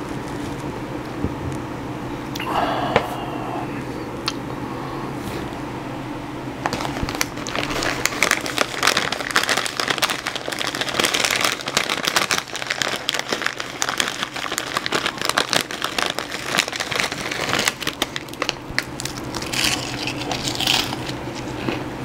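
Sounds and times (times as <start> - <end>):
chip bag crinkling: 0.0 - 0.9, 6.6 - 21.8
chips crunching: 6.6 - 21.8.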